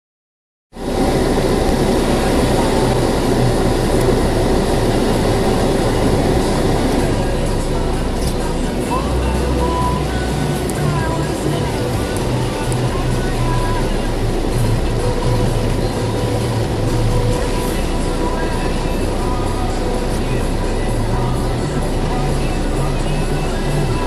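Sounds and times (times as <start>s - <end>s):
car engine hum: 0.8s - 24.0s
tyre noise on wet road: 0.8s - 24.0s.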